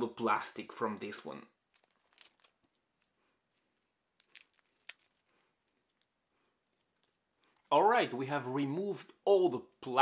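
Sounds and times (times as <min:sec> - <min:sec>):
plastic film crinkling: 0:01.6 - 0:07.7.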